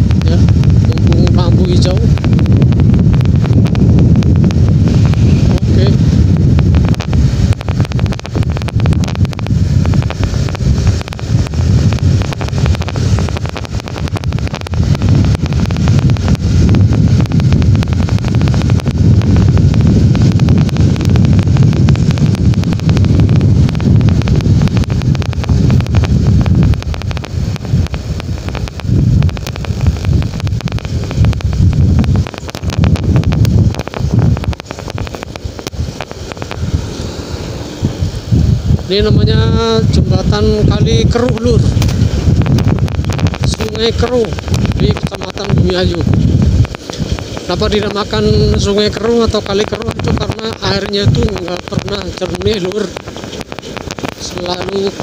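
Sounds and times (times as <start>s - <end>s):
motorcycle engine: 0.0s - 55.0s
road noise: 0.0s - 55.0s
wind buffeting microphone: 0.0s - 55.0s.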